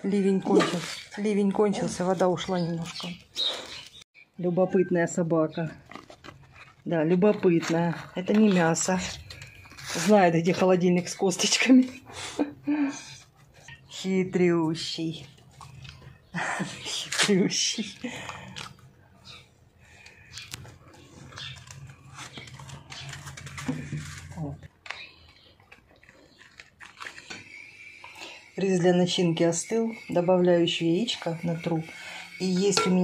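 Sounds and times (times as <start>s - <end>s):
dog crunching and chewing: 5.7s - 10.8s, 15.2s - 16.3s, 20.3s - 28.5s.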